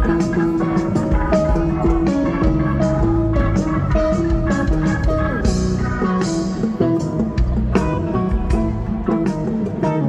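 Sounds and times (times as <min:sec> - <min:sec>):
bass guitar: 0:00.0 - 0:10.0
drums: 0:00.0 - 0:10.0
electric guitar lead: 0:00.0 - 0:10.0.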